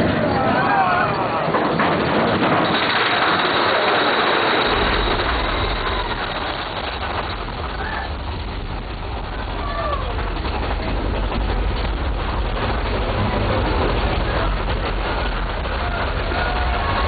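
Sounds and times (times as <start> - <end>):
deep low rumble: 0.0 - 17.0
roller coaster rattling rumble: 0.0 - 17.0.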